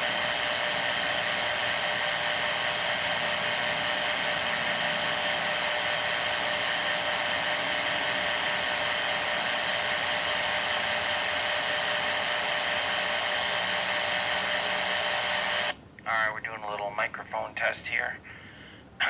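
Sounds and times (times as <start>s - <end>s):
radio static hiss: 0.0s - 19.0s.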